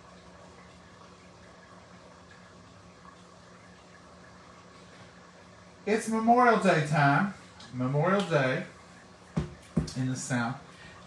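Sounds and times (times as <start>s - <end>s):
low hum with soft hiss: 0.0s - 11.0s.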